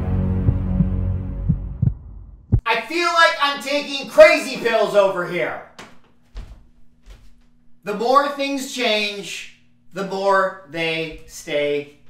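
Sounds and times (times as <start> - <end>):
low thumps: 0.2 - 2.6, 5.7 - 7.8.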